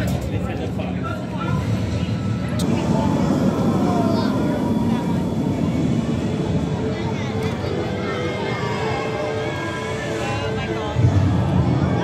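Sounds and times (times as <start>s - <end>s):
roller coaster rumbling on track: 0.0s - 12.0s.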